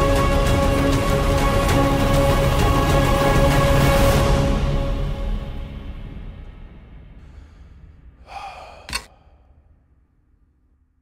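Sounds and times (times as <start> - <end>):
person gasping: 7.2 - 9.6
sharp click: 8.8 - 9.2.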